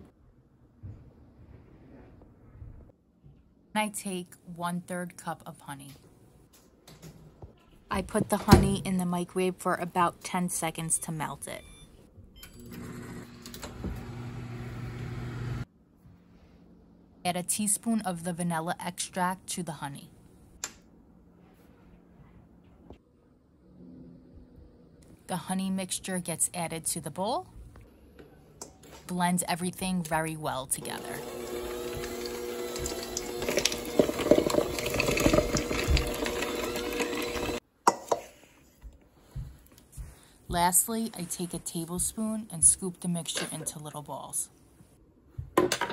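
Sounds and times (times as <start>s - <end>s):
microwave oven humming: 12.4s - 15.7s, 31.0s - 37.6s.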